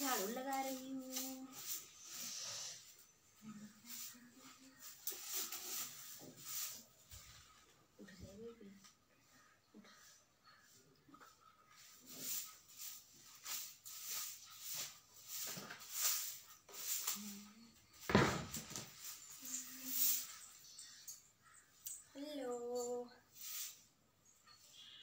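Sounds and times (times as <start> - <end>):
hand broom sweeping floor: 0.0 - 8.2, 10.0 - 20.9, 23.2 - 25.0
loud thump: 18.1 - 18.6.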